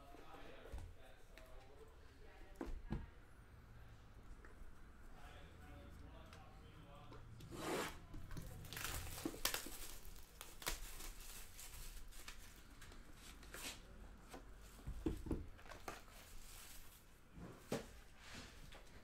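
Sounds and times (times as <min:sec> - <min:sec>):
plastic wrap tearing and crinkling: 0:08.3 - 0:12.8.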